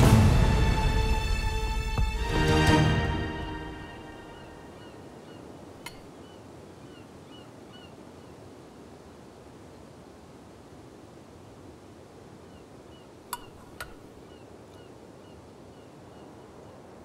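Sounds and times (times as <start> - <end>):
small birds chirping: 4.0 - 8.5, 12.4 - 17.0.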